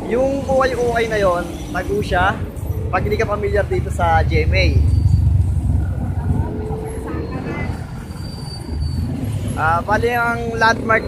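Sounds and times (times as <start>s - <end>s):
road traffic: 0.0s - 11.0s
truck engine rumble: 0.0s - 11.0s.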